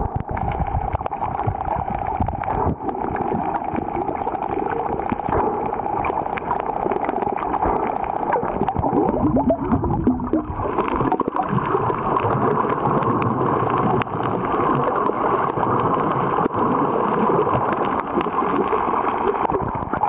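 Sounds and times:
gurgling bubbly blips: 0:00.0 - 0:20.0
muffled underwater noise: 0:00.0 - 0:20.0.

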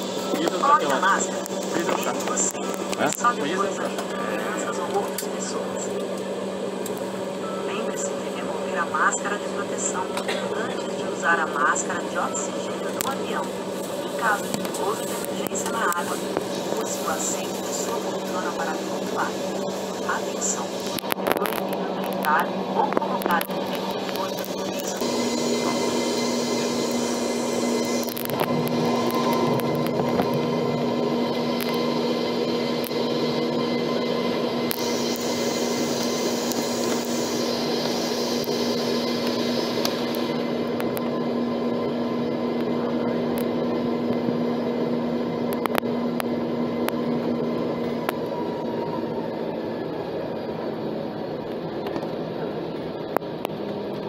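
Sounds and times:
steady engine hum: 0:00.0 - 0:54.0
jet cabin rushing noise: 0:12.6 - 0:54.0.

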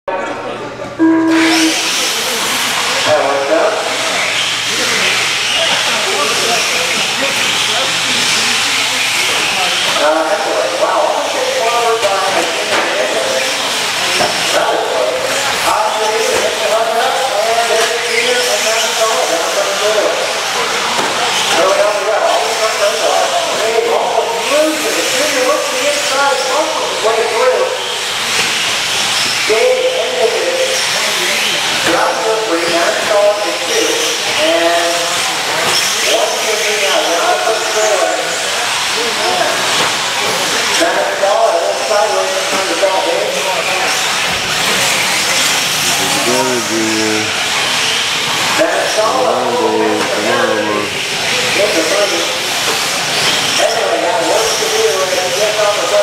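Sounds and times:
person talking: 0:45.9 - 0:47.4, 0:49.1 - 0:51.0.

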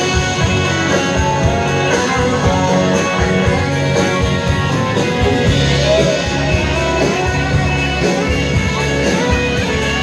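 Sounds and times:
live country band playing: 0:00.0 - 0:10.0.

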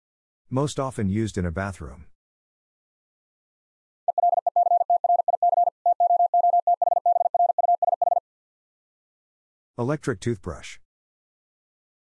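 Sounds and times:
morse code tone: 0:04.1 - 0:08.2.

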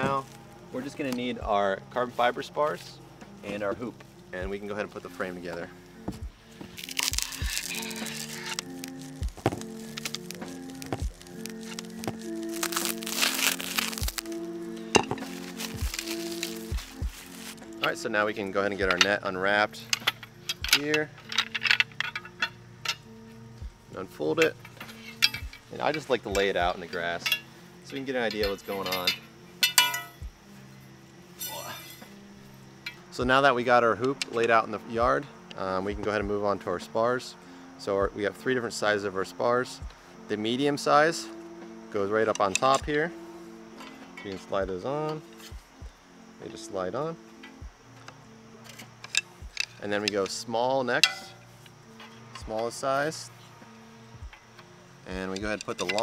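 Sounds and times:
background music: 0:00.0 - 0:56.0
knife slicing plastic: 0:06.8 - 0:14.4
plastic wrap crinkling and tearing: 0:06.8 - 0:14.5, 0:15.2 - 0:17.6
sharp cracks: 0:06.8 - 0:17.6
metal tubing clinking: 0:06.8 - 0:23.1, 0:24.4 - 0:30.2, 0:31.4 - 0:32.1, 0:48.6 - 0:53.2, 0:55.1 - 0:56.0.

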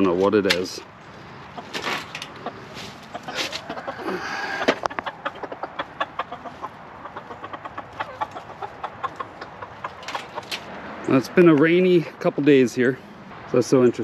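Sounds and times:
leaves rustling: 0:00.0 - 0:05.0
chickens clucking: 0:00.0 - 0:13.0.

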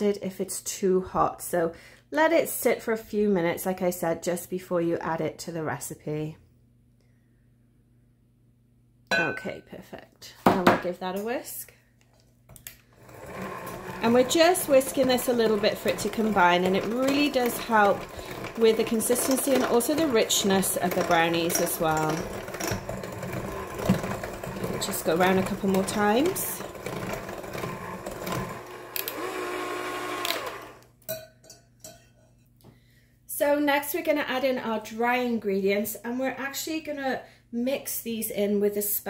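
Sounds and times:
electric hand mixer running: 0:13.0 - 0:30.9
hand mixer clicks: 0:28.3 - 0:30.9.

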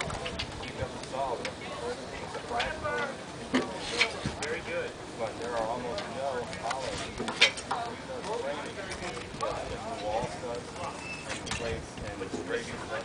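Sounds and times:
people talking in background: 0:00.0 - 0:13.0.

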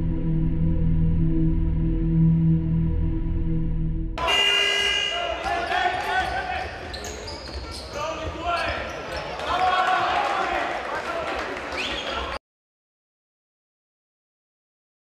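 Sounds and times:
low music drone: 0:00.0 - 0:04.2
crowd voices: 0:04.2 - 0:12.4.

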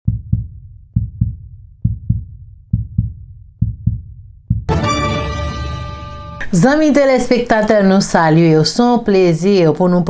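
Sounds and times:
heartbeat thumps: 0:00.0 - 0:04.7.

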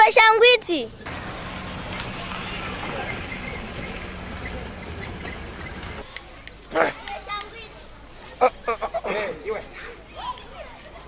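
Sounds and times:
car passing on road: 0:01.0 - 0:06.1.

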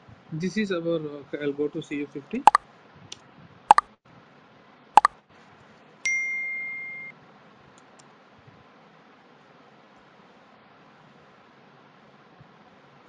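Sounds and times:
sharp clicks: 0:02.5 - 0:03.9.

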